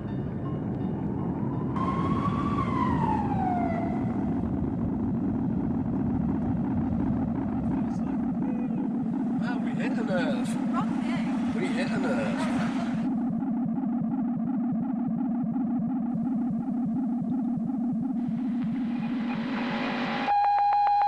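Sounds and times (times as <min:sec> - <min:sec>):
dense low rumble: 0:00.0 - 0:20.3
voices: 0:07.2 - 0:13.4.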